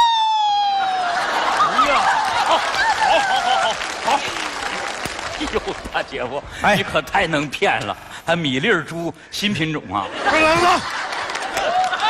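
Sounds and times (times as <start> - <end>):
audience applauding: 0.7 - 6.4, 10.7 - 12.0
audience laughing: 0.9 - 7.1, 9.8 - 12.0.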